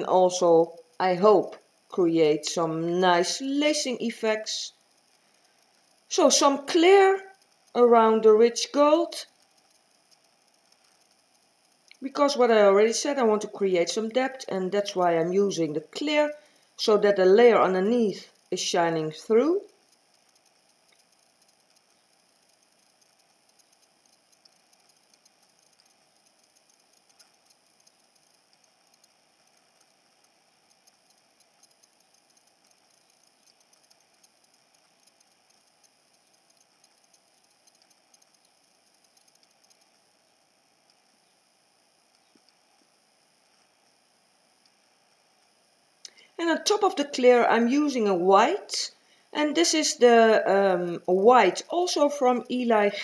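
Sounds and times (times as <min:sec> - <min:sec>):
faint steady hiss: 0:00.0 - 0:53.0
tiny clicks: 0:04.7 - 0:12.1, 0:17.8 - 0:47.3.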